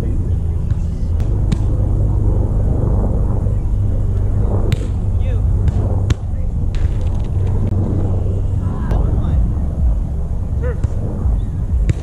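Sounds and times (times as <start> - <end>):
faint distant voices: 0.0 - 12.0
wind buffeting microphone: 0.0 - 12.0.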